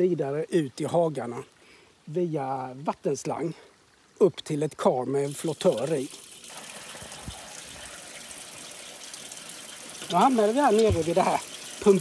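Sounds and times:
water running into trough: 5.2s - 12.0s.

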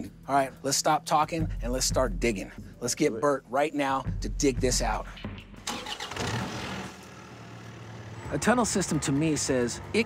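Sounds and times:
diesel engine starting and running: 5.6s - 10.0s.

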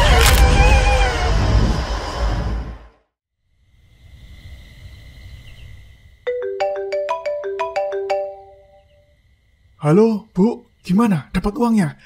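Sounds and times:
phone ringtone melody: 6.3s - 8.9s.

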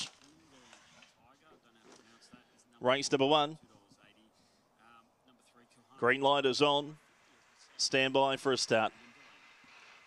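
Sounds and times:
faint distant voices: 0.0s - 10.0s
low background noise: 0.0s - 10.0s.

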